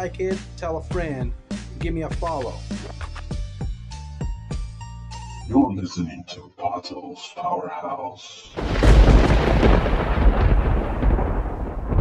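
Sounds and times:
deep thunder-like rumbling: 8.6 - 12.0.

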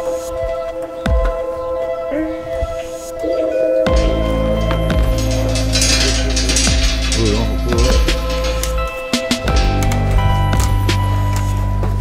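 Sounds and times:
electronic music: 0.0 - 12.0.

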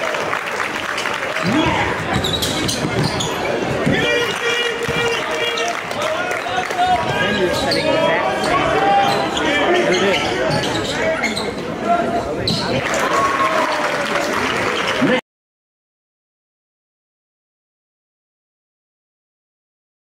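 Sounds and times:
crowd voices: 0.0 - 15.2
basketball bouncing on court: 1.4 - 4.1.

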